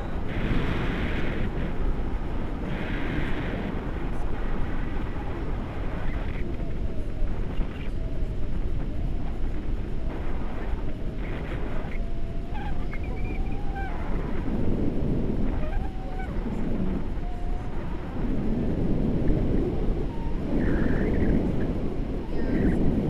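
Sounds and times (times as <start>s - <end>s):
faint wavering tones: 0.0s - 23.0s
wind buffeting microphone: 0.0s - 23.0s.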